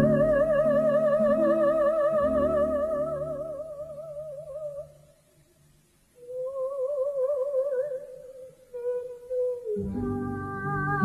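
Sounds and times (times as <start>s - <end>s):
woman singing softly: 0.0s - 5.0s, 6.2s - 11.0s.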